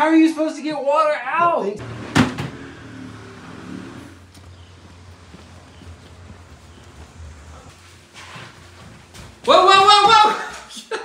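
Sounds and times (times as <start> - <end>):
vehicle engine idling: 1.8 - 7.7.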